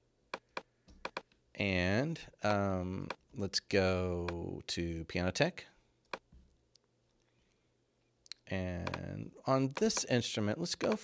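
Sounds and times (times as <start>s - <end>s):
computer mouse click: 8.8s - 9.1s, 10.8s - 11.0s.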